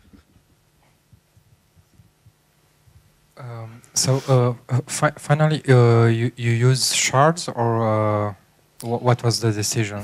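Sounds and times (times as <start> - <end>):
soft low thumps: 0.0 - 3.2.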